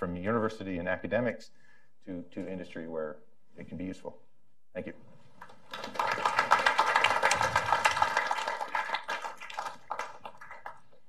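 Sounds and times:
audience clapping: 0:05.4 - 0:11.0.

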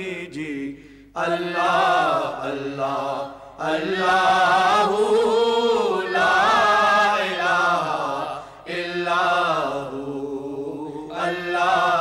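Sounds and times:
people singing melodic vowels: 0:00.0 - 0:12.0.

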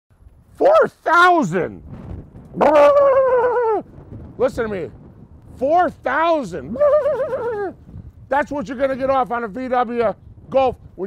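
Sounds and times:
man's long shout: 0:00.6 - 0:01.7, 0:02.6 - 0:03.9, 0:06.3 - 0:07.8.

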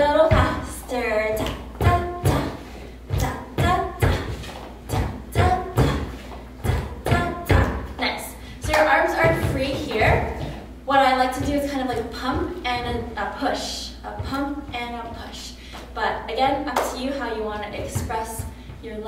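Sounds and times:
woman vocalizing sung syllables: 0:00.1 - 0:08.2
sneakers thudding on wooden floor: 0:09.1 - 0:13.2, 0:14.1 - 0:15.3.

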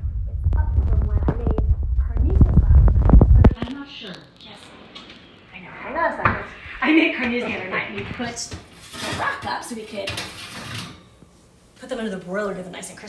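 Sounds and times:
dishes and metal clattering: 0:08.4 - 0:11.1.

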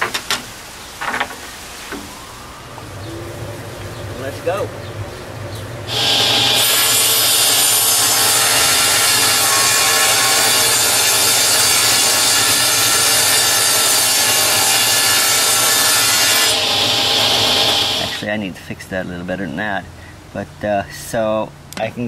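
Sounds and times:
table saw ripping wooden board: 0:05.9 - 0:18.2.

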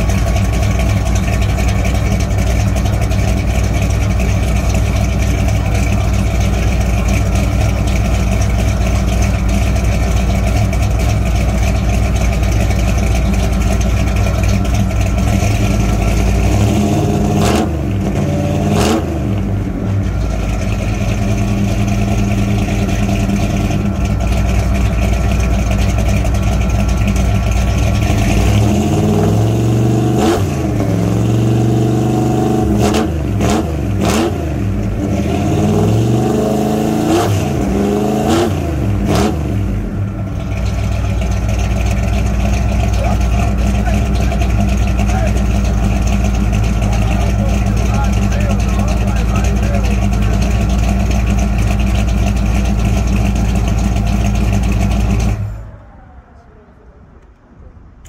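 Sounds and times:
pickup engine idling and revving: 0:00.0 - 0:58.0.

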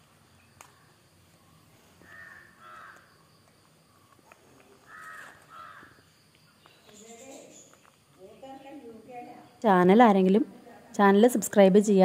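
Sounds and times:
bird calling: 0:00.3 - 0:09.6.

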